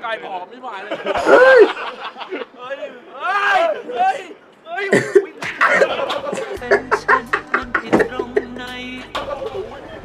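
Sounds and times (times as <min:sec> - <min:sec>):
men laughing: 0:00.9 - 0:02.6, 0:05.0 - 0:10.0
rough voice sounds: 0:04.8 - 0:09.2
harsh cough-like burst: 0:04.9 - 0:07.4.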